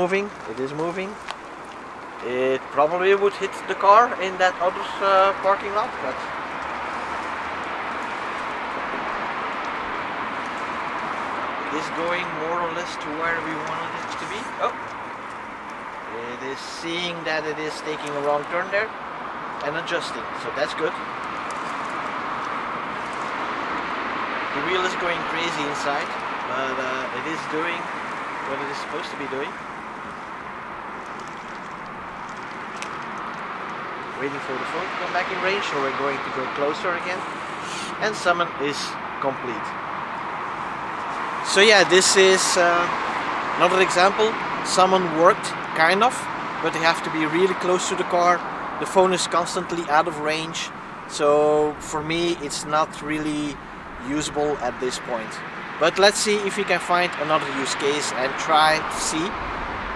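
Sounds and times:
electric car creeping: 0.0s - 59.9s
outdoor background hiss: 0.0s - 59.9s
tyres rolling on asphalt: 0.0s - 59.9s.

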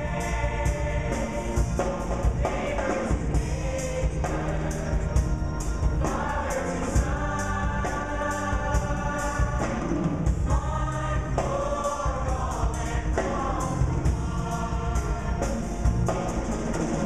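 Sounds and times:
choir singing in harmony: 0.0s - 17.0s
drum kit steady beat: 0.0s - 17.0s
live band: 0.0s - 17.0s.

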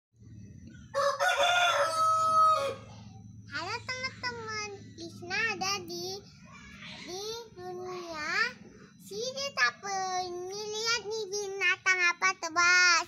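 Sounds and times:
rooster crowing: 0.9s - 3.2s.

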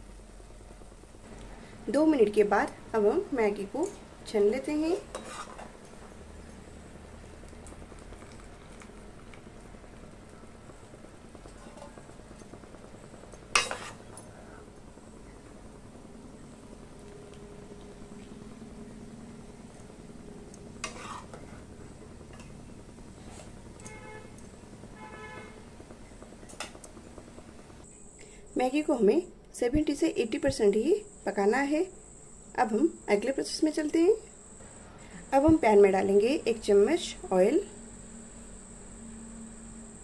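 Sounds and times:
utensils working noodles in pan: 2.6s - 17.2s, 19.4s - 27.8s.

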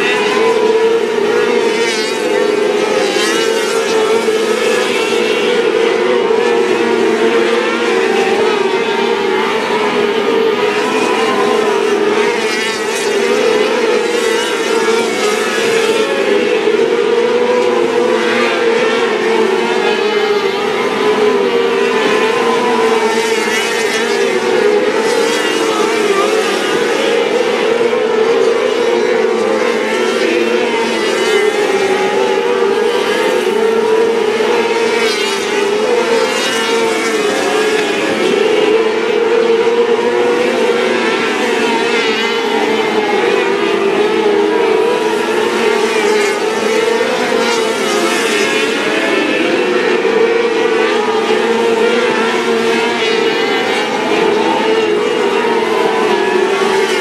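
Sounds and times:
racing car engines at high revs: 0.0s - 57.0s.

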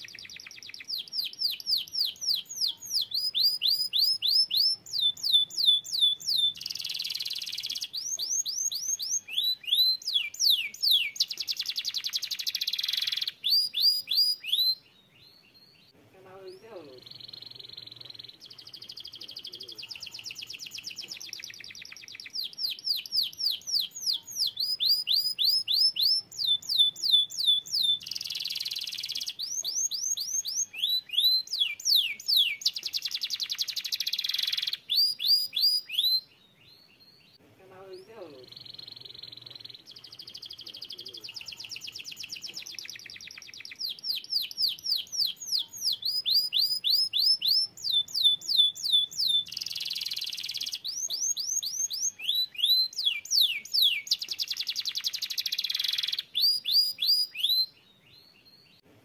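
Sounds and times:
canary singing: 0.0s - 58.9s.

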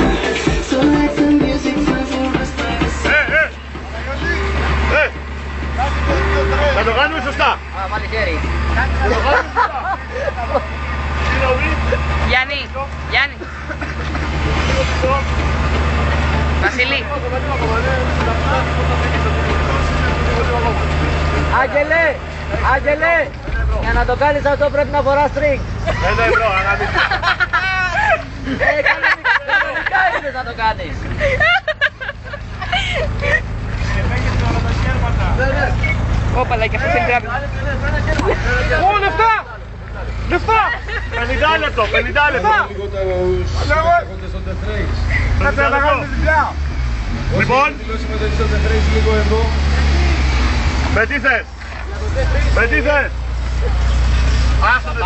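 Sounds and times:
men chanting and calling out: 0.0s - 31.5s, 32.8s - 55.0s
vehicle low rumble: 0.0s - 55.0s
people talking: 3.0s - 15.5s, 16.4s - 31.8s, 32.8s - 46.6s, 47.3s - 55.0s.

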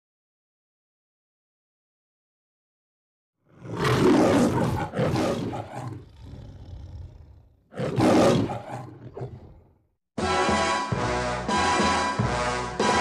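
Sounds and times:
lion growling: 3.5s - 9.8s
lion roaring: 3.5s - 9.8s.

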